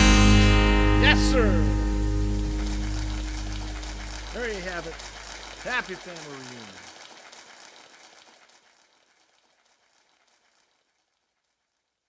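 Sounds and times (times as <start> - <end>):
acoustic guitar chord ringing: 0.0 - 5.2.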